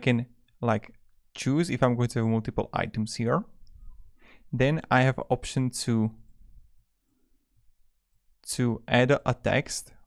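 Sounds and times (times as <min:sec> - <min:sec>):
man speaking: 0:08.4 - 0:10.0.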